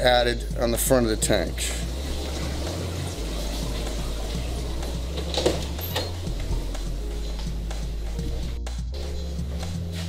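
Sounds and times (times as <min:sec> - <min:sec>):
water trickling in aquarium: 0:01.3 - 0:06.7.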